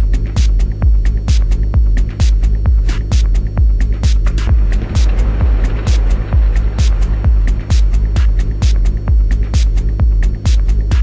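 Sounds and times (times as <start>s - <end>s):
deep bass: 0.0s - 11.0s
four-on-the-floor kick drum: 3.2s - 11.0s
noise hiss: 3.8s - 11.0s.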